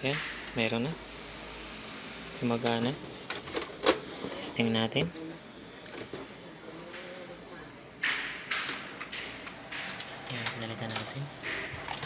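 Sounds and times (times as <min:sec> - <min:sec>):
printer mechanism sliding and clattering: 0:08.0 - 0:12.0.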